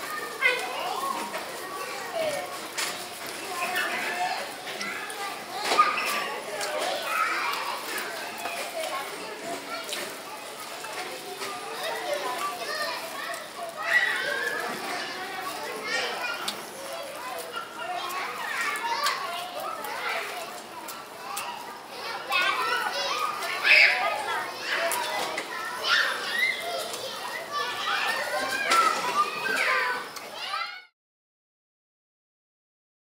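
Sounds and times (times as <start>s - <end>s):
children shouting: 0.0s - 30.9s
children talking and calling out: 0.0s - 30.9s.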